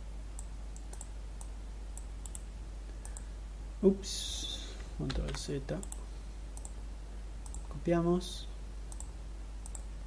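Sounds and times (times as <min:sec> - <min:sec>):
low steady hum: 0:00.0 - 0:10.0
computer mouse and keyboard clicks: 0:05.0 - 0:06.0.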